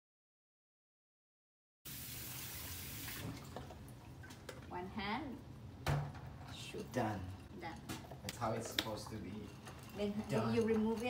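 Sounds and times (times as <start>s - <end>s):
tap water running into sink: 1.9s - 4.4s.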